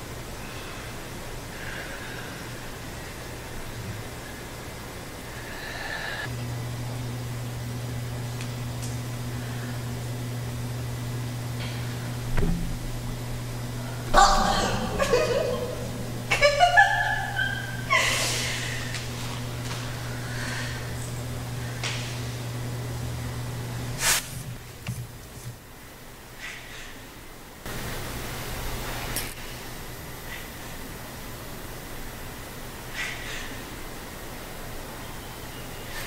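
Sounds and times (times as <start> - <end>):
low hum with faint hiss: 0.0 - 36.0
background hiss: 23.9 - 24.5.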